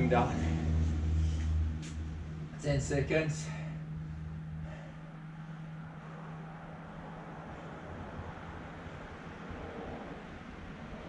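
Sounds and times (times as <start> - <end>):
faint low hum: 0.0 - 11.0.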